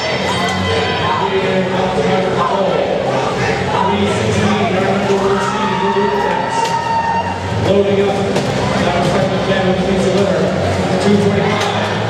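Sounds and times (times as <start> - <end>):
music playing in arena: 0.0 - 12.0
large crowd cheering: 3.8 - 9.2.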